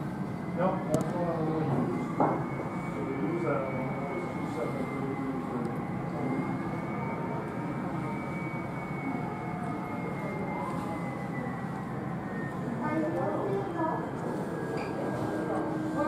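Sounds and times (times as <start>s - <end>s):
muffled jet engines rumbling: 0.0s - 16.0s.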